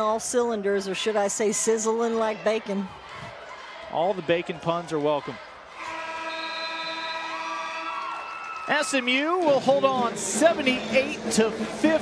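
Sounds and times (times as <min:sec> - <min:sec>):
arena game horn blast: 0:05.8 - 0:07.9.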